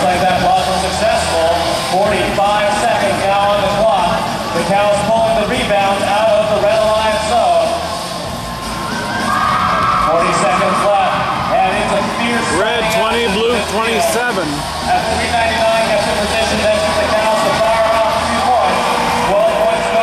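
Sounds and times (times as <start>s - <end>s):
crowd noise: 0.0s - 20.0s
man speaking over pa: 12.6s - 14.6s.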